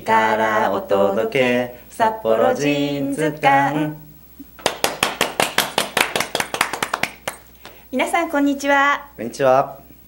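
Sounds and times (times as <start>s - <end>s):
people clapping hands: 4.6s - 7.8s.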